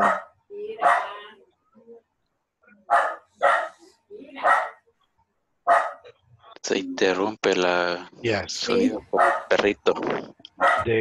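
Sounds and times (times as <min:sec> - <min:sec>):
dog barking: 0:00.0 - 0:01.2, 0:02.9 - 0:03.8, 0:04.4 - 0:04.8, 0:05.7 - 0:06.1, 0:09.1 - 0:09.6, 0:10.6 - 0:10.9.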